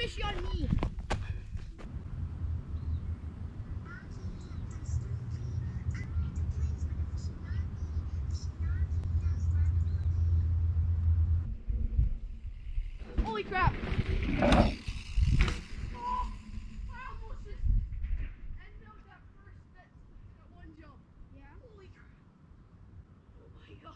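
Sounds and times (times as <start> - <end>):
low rumble: 1.6 - 19.0.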